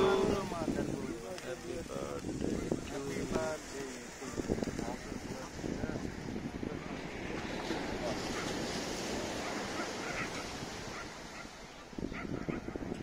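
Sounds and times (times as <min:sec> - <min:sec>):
faint voices: 0:00.0 - 0:10.4
wind buffeting microphone: 0:00.0 - 0:13.0.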